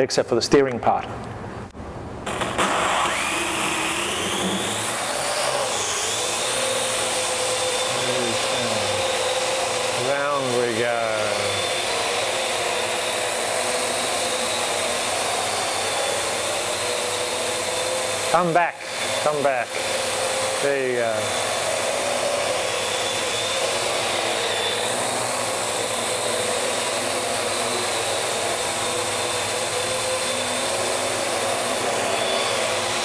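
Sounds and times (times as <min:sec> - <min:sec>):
quadcopter motors whirring: 0:02.3 - 0:33.0.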